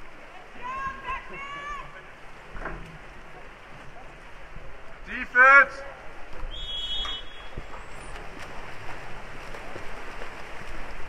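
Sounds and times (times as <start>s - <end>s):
swimmers splashing water: 0.0s - 11.0s.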